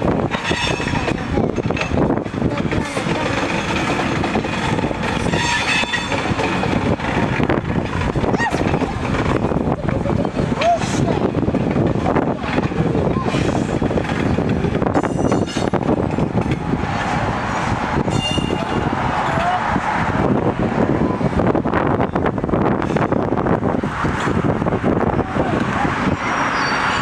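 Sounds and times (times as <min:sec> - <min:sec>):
vehicle rumble: 0:00.0 - 0:27.0
indistinct voices: 0:00.1 - 0:22.1, 0:24.1 - 0:27.0.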